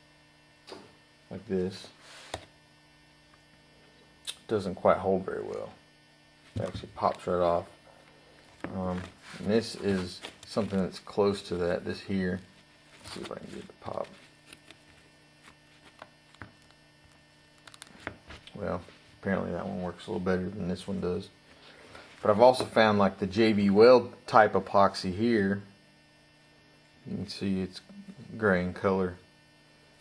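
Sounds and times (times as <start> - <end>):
faint electrical hum: 0.0 - 30.0.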